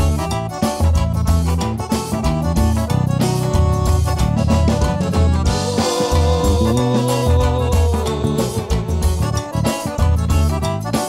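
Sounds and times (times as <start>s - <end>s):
accordion melody: 0.0s - 11.0s
bass: 0.0s - 11.0s
drum rhythm: 0.0s - 11.0s.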